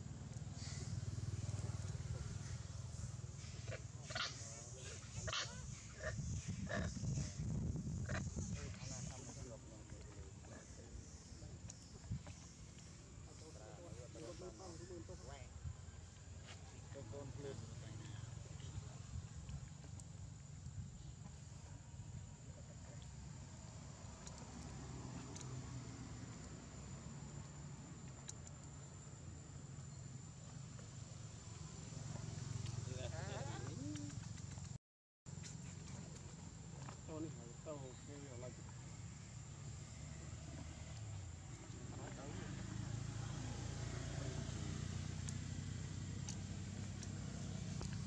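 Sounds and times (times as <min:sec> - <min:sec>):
monkeys giving high calls: 0:03.6 - 0:09.4.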